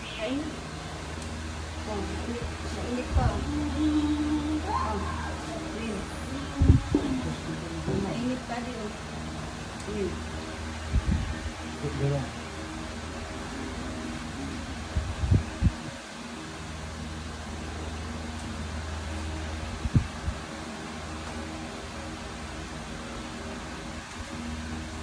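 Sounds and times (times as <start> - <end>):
low mechanical hum: 0.0 - 25.0.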